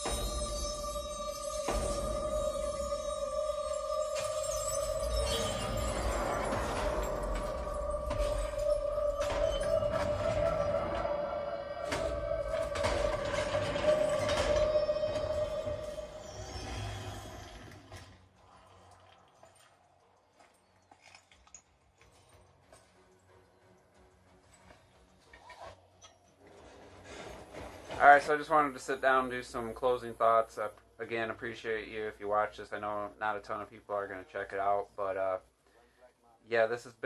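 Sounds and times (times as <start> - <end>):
film score music: 0.0 - 17.9.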